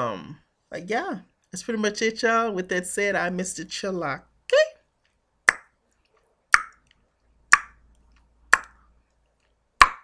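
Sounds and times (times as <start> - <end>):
tongue clicks: 5.5 - 8.9.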